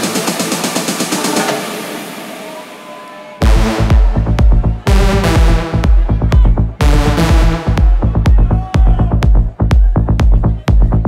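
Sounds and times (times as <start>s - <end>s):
techno music build-up: 0.0s - 11.0s.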